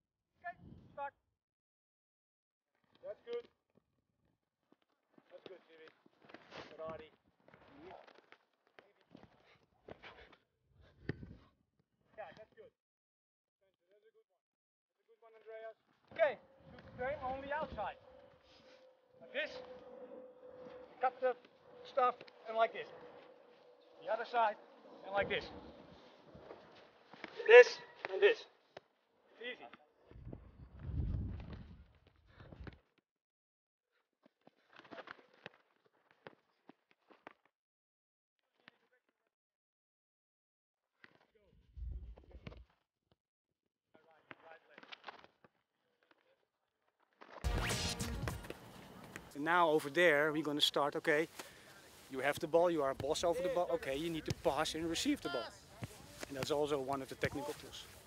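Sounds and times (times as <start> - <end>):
soccer balls being kicked: 52.3 - 58.0
soccer ball dribbled: 55.7 - 58.0.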